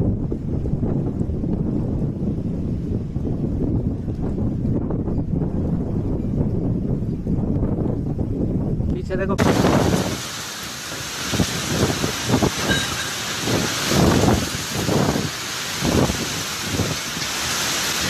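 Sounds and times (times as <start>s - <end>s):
wind gusts: 0.0s - 18.0s
wind rumbling on microphone: 0.0s - 18.0s
heavy rain hissing: 9.3s - 18.0s.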